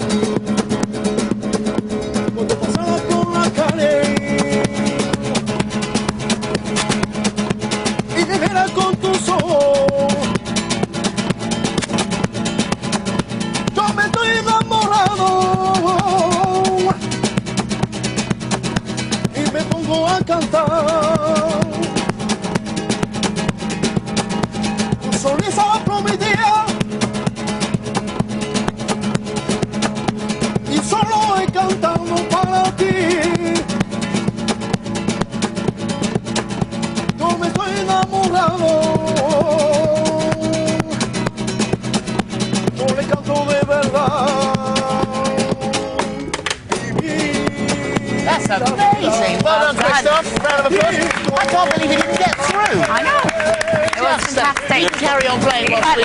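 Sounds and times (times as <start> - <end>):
strummed acoustic guitar: 0.0 - 56.0
man singing: 2.1 - 7.2, 7.9 - 11.3, 13.6 - 17.7, 19.1 - 22.4, 24.9 - 26.8, 30.5 - 33.9, 37.0 - 56.0
person singing: 43.2 - 55.4.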